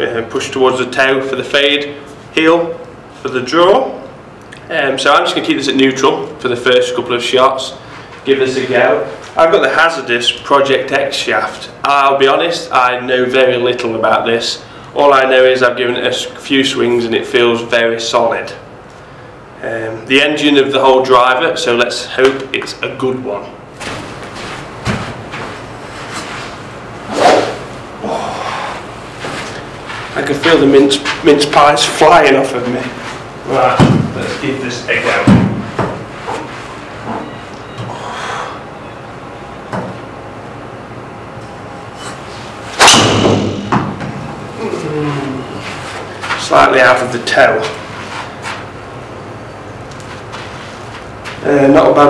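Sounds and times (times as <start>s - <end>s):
golf club swishing through air: 26.1s - 27.7s.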